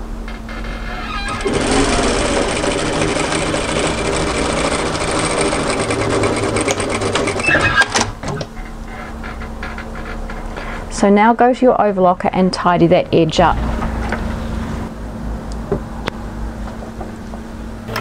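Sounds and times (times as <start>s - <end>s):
steady hum: 0.0s - 18.0s
sewing machine stitching: 0.9s - 8.5s
sewing machine clicks: 1.3s - 8.1s.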